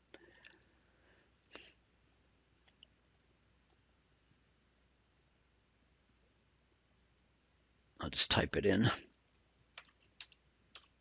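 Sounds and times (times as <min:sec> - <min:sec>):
computer mouse clicks: 0:00.2 - 0:00.6, 0:09.1 - 0:11.0.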